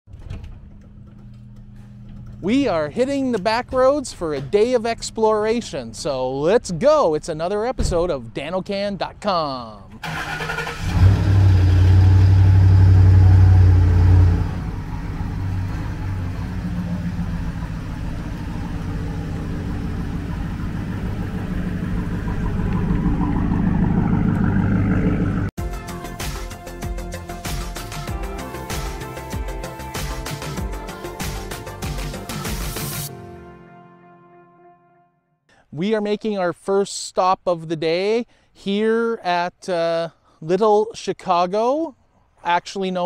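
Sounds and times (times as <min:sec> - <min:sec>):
garage door rattle and knock: 0:00.1 - 0:01.4
garage door opener motor hum: 0:00.1 - 0:02.4.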